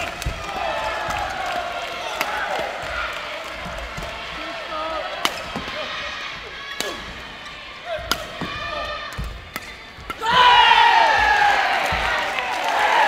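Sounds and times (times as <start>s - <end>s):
spectators' voices: 0.0s - 13.0s
rackets striking shuttlecock: 6.7s - 7.1s, 7.9s - 12.4s.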